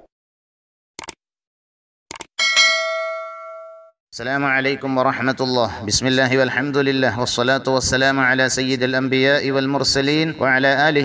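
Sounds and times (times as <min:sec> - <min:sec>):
notification bell chime: 0:02.4 - 0:03.9.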